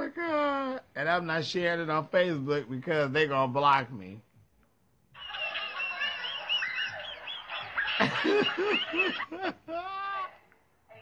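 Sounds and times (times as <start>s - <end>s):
person squealing laughter: 5.3s - 10.4s.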